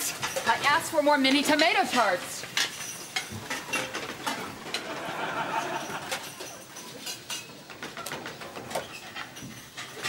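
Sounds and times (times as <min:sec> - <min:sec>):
dishes and utensils clinking: 0:00.0 - 0:10.0.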